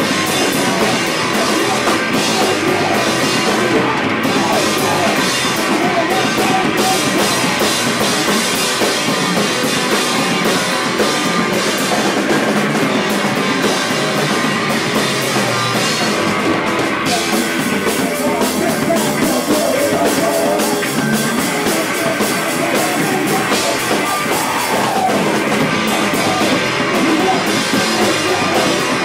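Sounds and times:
live rock band playing: 0.0s - 29.0s.

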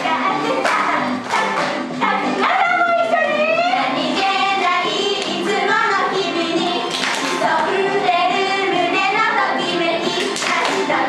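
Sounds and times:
girls singing together: 0.0s - 11.0s
pop music: 0.0s - 11.0s.

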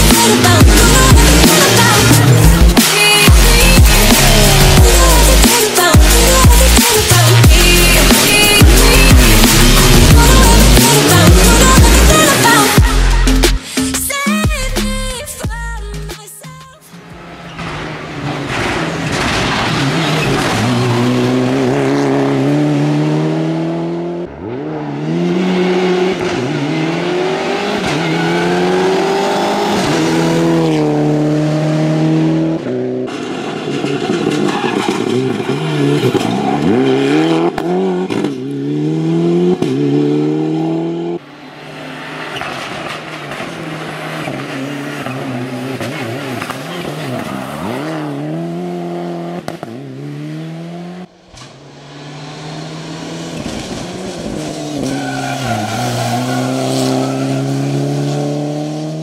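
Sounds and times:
rally car engine revving hard: 0.0s - 13.2s, 17.2s - 59.0s.

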